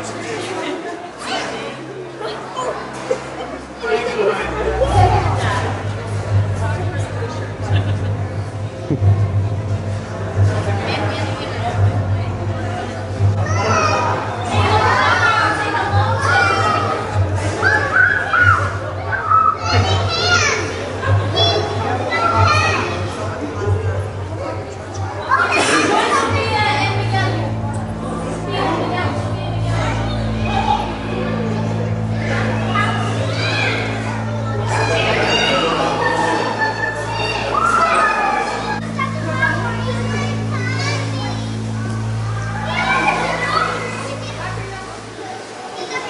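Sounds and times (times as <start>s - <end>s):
background music: 0.0s - 45.7s
children talking and calling out: 0.0s - 46.0s
steady low hum: 4.4s - 13.4s.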